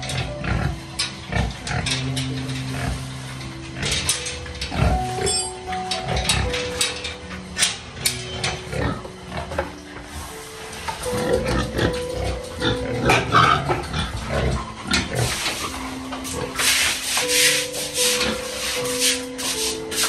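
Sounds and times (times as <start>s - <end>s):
pigs grunting: 0.0s - 7.1s, 7.8s - 20.0s
scraping on wet concrete floor: 13.0s - 20.0s.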